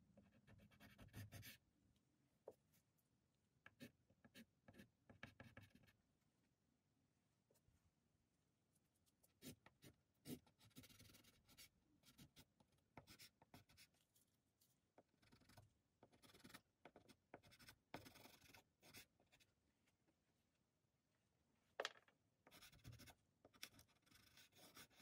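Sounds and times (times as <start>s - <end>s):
pastel scratching on paper: 23.7s - 25.0s.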